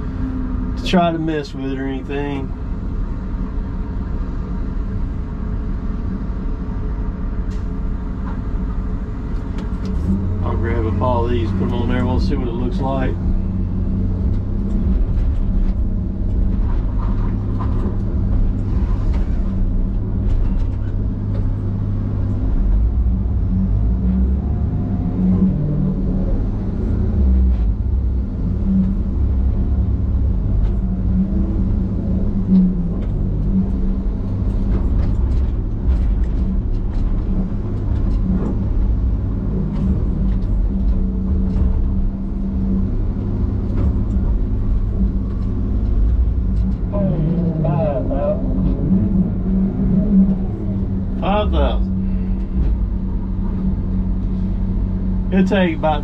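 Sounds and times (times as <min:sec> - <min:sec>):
diesel engine and hydraulics: 0:00.0 - 0:56.0.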